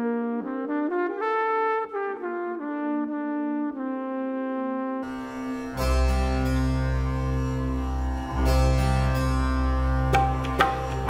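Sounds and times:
harpsichord plucking: 0:05.0 - 0:11.0
held low bass note: 0:05.1 - 0:11.0
qanun plucked: 0:05.1 - 0:11.0.

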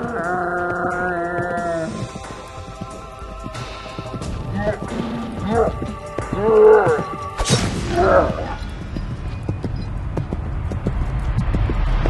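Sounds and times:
galloping hoofbeats: 0:00.0 - 0:12.0
low music bed: 0:00.0 - 0:12.0.

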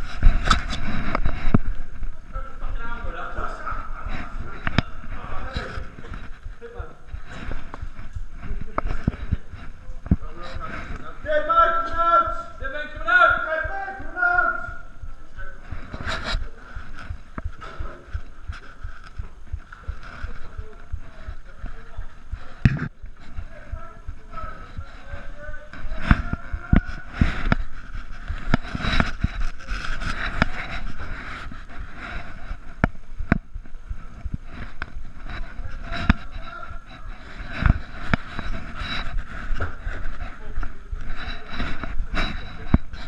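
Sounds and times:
footsteps on gritty concrete: 0:15.9 - 0:41.1.

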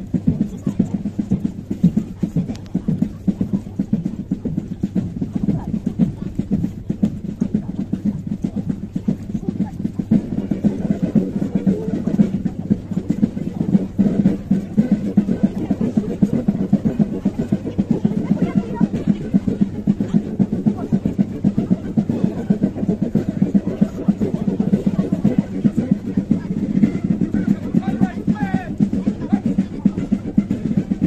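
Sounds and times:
crowd voices: 0:00.0 - 0:31.0
troops marching: 0:00.0 - 0:31.0
band playing: 0:09.0 - 0:31.0.

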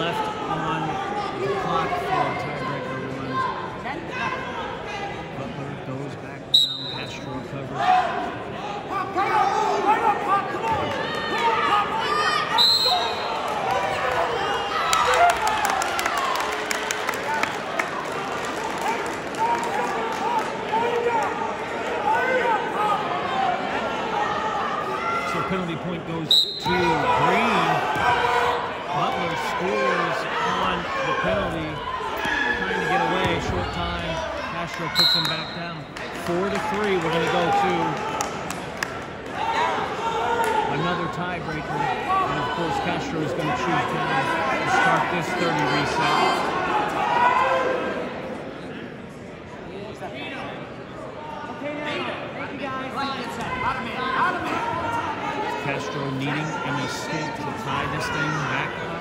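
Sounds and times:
referee whistle blasts: 0:06.5 - 0:07.2, 0:12.5 - 0:13.3, 0:26.3 - 0:27.0, 0:34.9 - 0:35.8
people shouting in a gym: 0:07.8 - 0:16.2, 0:19.4 - 0:25.5, 0:26.4 - 0:31.2, 0:45.9 - 0:48.3, 0:51.1 - 0:55.6.

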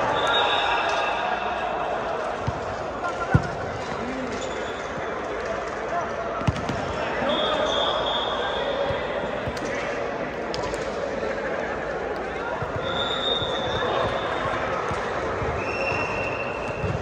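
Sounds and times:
players' voices in gym hall: 0:00.0 - 0:17.0
shoe squeaking on court floor: 0:03.4 - 0:05.3, 0:12.5 - 0:17.0.

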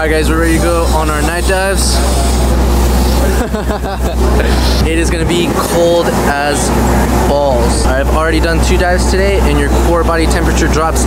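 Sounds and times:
boat engine drone: 0:00.0 - 0:11.0
voices: 0:00.0 - 0:11.0.

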